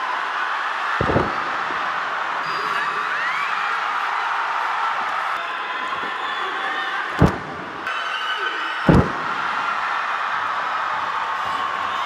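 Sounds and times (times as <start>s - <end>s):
arena crowd noise: 0.0s - 12.0s
bodies thudding on ring canvas: 7.2s - 7.9s, 8.9s - 9.6s.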